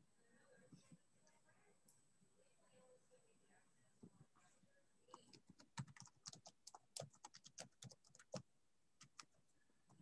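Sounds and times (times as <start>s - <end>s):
typing on computer keyboard: 5.1s - 9.4s.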